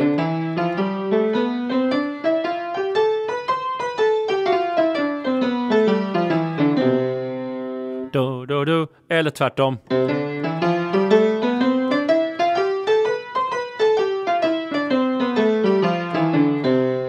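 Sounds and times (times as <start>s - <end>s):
piano playing a scale: 0.0s - 8.2s, 9.9s - 17.0s.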